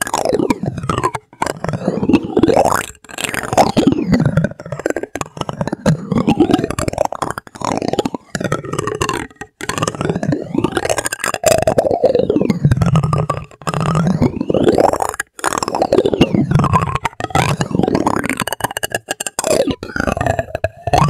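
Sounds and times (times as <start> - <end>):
plastic spoons scraping and tapping: 0.0 - 11.9, 12.5 - 21.0.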